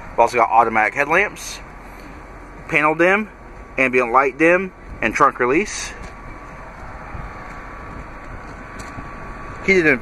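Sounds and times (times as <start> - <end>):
climate fan blowing: 1.1 - 10.0.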